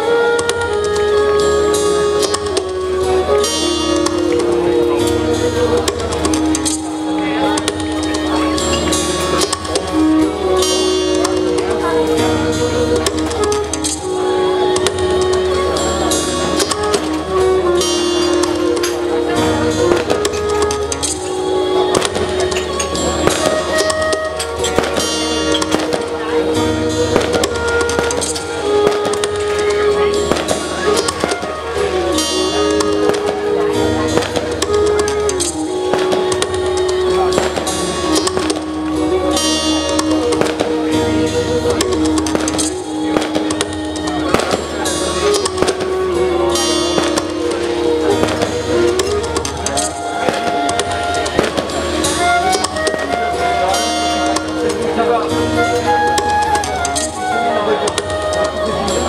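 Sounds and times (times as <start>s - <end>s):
flute playing slow melody: 0.0s - 59.0s.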